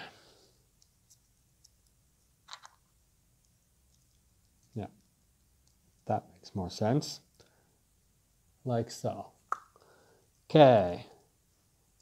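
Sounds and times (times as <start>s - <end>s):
plastic model parts clicking: 0.8s - 2.8s.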